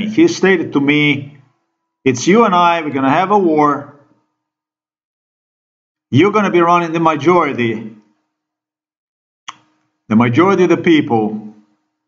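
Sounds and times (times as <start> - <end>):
person speaking: 0.0 - 1.3, 2.1 - 3.8, 6.2 - 7.9, 10.1 - 11.4.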